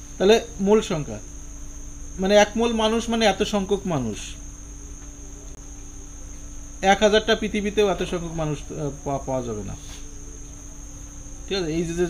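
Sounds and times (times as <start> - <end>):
crickets trilling: 0.0 - 12.0
faint low hum: 0.0 - 12.0
man speaking: 0.2 - 1.2, 2.2 - 4.4, 6.8 - 9.9, 11.5 - 12.0.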